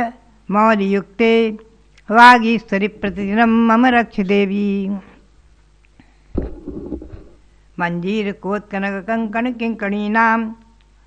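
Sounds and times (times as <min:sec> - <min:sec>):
microphone handling rumble: 0:06.3 - 0:07.5.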